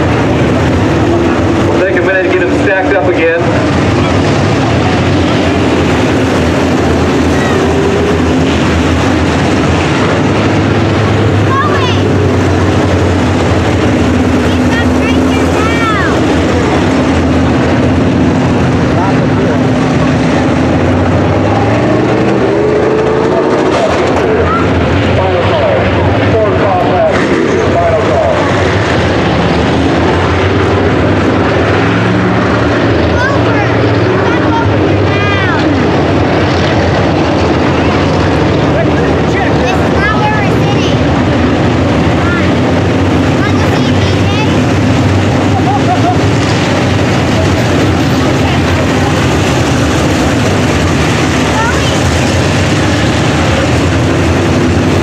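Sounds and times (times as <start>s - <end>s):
race car engines: 0.0s - 55.0s.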